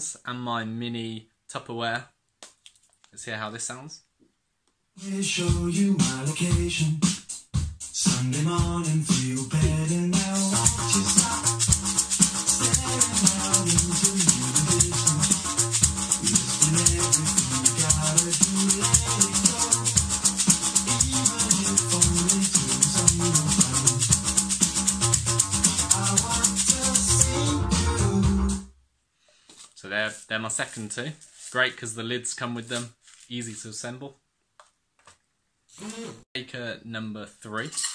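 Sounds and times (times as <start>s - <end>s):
backing music: 5.0s - 28.7s
lentil shaker shaken: 10.2s - 27.6s.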